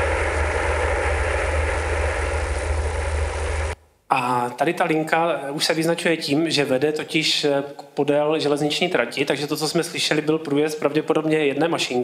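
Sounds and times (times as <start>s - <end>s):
steady noise with low hum: 0.0s - 12.0s.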